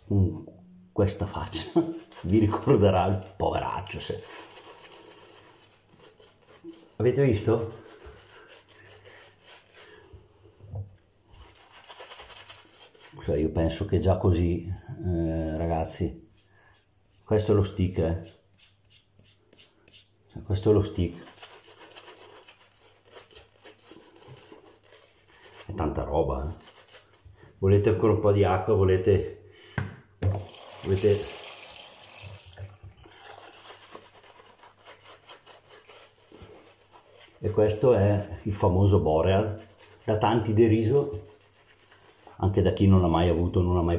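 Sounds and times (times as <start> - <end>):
shaving brush rubbing lather: 1.5 - 10.6, 11.3 - 14.4, 15.5 - 27.5, 33.2 - 42.6
running water: 30.3 - 34.6.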